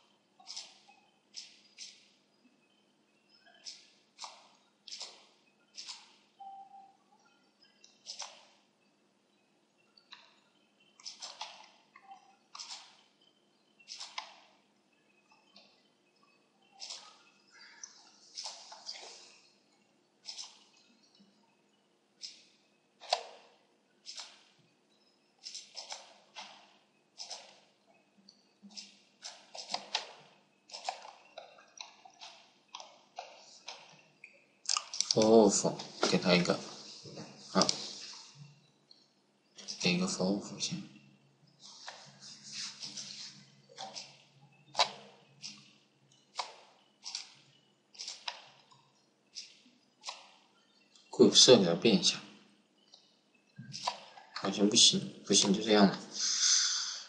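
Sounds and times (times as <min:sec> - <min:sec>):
faint steady hum: 0:00.0 - 0:57.0
mouse and keyboard clicks: 0:00.4 - 0:02.0, 0:03.6 - 0:06.2, 0:07.8 - 0:08.5, 0:11.0 - 0:13.0, 0:13.9 - 0:14.4, 0:16.7 - 0:17.2, 0:20.2 - 0:20.8, 0:23.0 - 0:23.4, 0:25.4 - 0:26.6, 0:27.2 - 0:27.6, 0:28.6 - 0:34.0, 0:43.8 - 0:47.4, 0:48.0 - 0:48.5, 0:49.4 - 0:50.3, 0:53.7 - 0:54.2.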